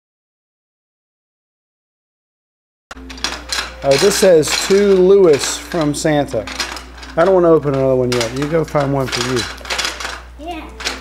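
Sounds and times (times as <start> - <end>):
clicks and rustles: 2.9 - 11.0.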